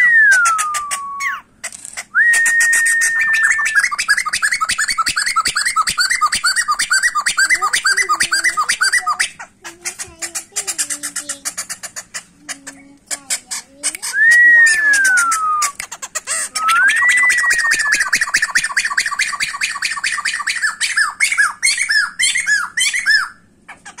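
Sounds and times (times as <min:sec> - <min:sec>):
bird singing whistles and chatter: 0:00.0 - 0:11.8, 0:14.0 - 0:23.4.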